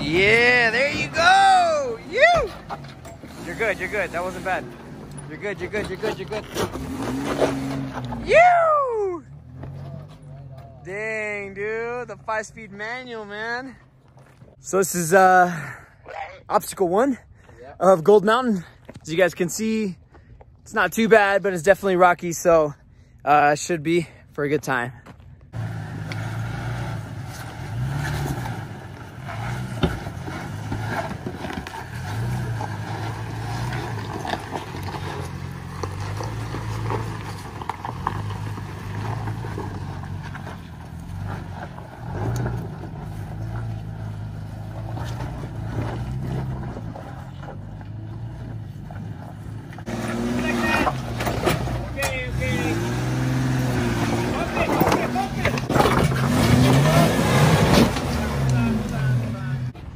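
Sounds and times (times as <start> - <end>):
suv engine revving: 0.0 - 10.7, 25.5 - 59.9
tires spinning on rock: 0.0 - 12.0, 25.5 - 59.9
truck engine at low speed: 0.0 - 14.6, 24.7 - 59.9.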